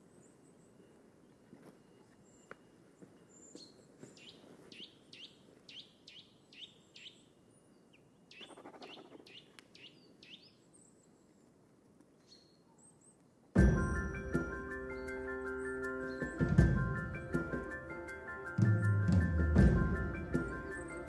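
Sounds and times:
thin high bird calls: 3.3s - 11.5s
downward-sliding bird chirps: 8.3s - 10.4s.

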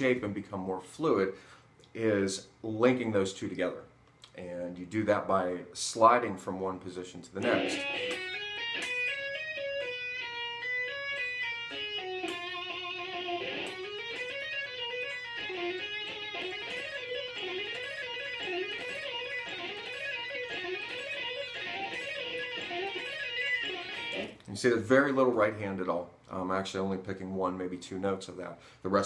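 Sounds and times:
electric guitar legato run: 7.4s - 24.4s.

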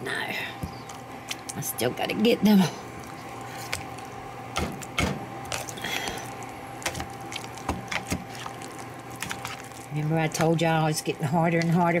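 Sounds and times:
potato masher squelching: 0.7s - 12.0s.

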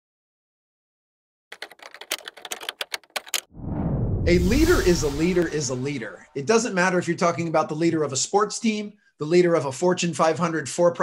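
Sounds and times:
keyboard key clicks: 1.6s - 3.4s
low rushing swell: 3.5s - 6.4s.

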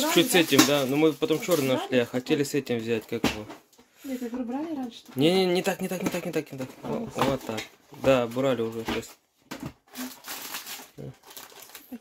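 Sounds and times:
paper and packet crinkling: 0.0s - 2.1s, 6.3s - 9.1s, 9.8s - 12.0s.

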